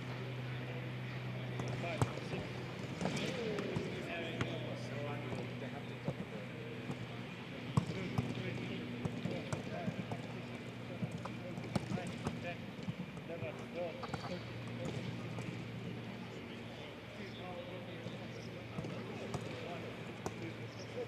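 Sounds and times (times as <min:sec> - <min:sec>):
steady low hum: 0:00.0 - 0:21.0
footballs being kicked: 0:07.7 - 0:15.6, 0:18.7 - 0:21.0.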